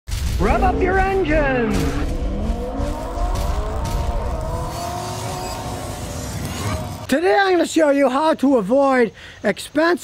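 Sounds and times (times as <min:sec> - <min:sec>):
car engine revving: 0:00.4 - 0:07.1.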